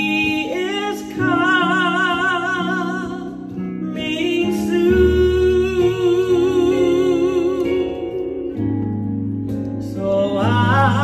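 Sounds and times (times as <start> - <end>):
woman singing with vibrato: 0.0 - 8.2
electronic keyboard chords: 0.0 - 11.0.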